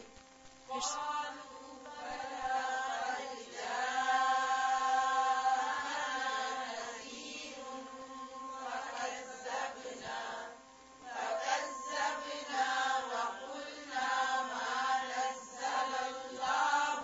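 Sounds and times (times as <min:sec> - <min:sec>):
faint steady drone: 0:00.0 - 0:17.0
melodic vocal chanting: 0:00.7 - 0:17.0.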